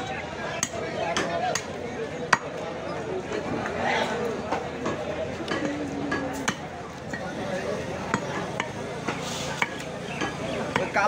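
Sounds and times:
cleaver chopping meat on wood: 9.6s - 11.0s.

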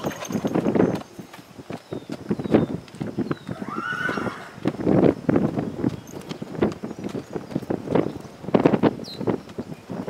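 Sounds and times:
hoofbeats trotting on dirt: 0.0s - 10.0s.

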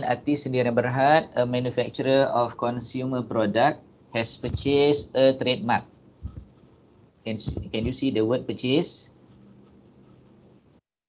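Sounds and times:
low microphone hum: 0.0s - 10.7s.

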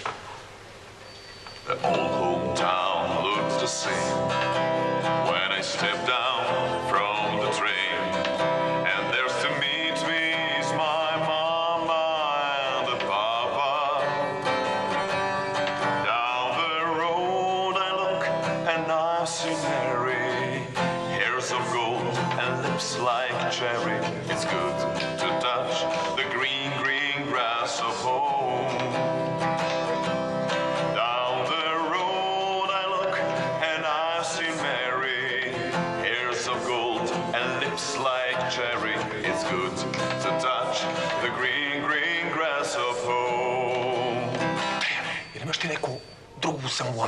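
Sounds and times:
acoustic guitar strumming: 0.8s - 47.0s
man singing: 1.7s - 15.1s, 15.8s - 45.3s.

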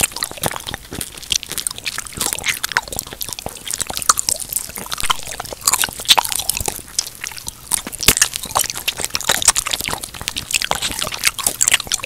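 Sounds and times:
crunchy chewing: 0.0s - 12.0s
wet squishy chewing: 0.0s - 12.0s.

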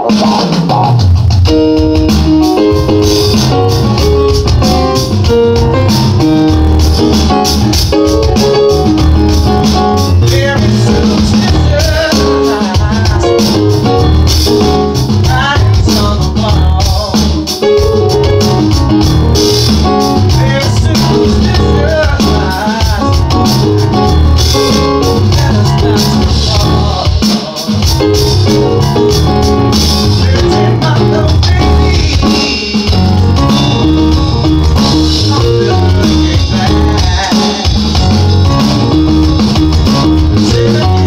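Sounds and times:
electronic drum beat: 0.0s - 41.0s
keyboard chords: 0.0s - 41.0s.

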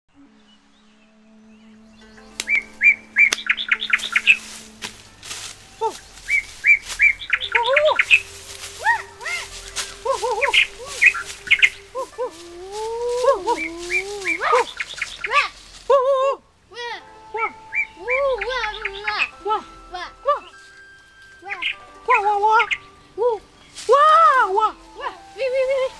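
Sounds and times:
bird chirps and trills: 0.1s - 15.9s, 16.6s - 25.9s
swooping bird calls: 0.1s - 16.0s, 17.2s - 25.9s.

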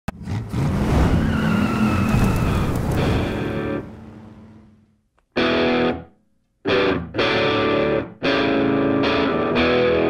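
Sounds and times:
car engine revving: 0.1s - 5.1s
tyre screech: 1.0s - 3.6s.

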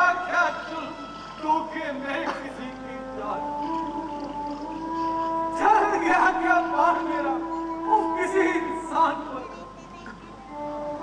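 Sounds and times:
man singing long notes: 0.0s - 9.6s.

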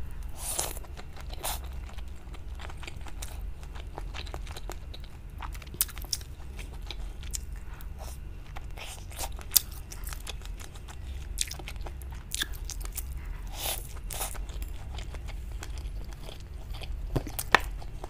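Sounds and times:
crunchy chewing: 0.1s - 18.0s.

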